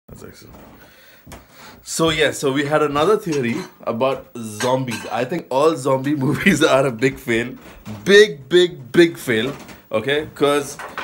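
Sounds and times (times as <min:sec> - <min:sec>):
person speaking: 0:01.8 - 0:11.0.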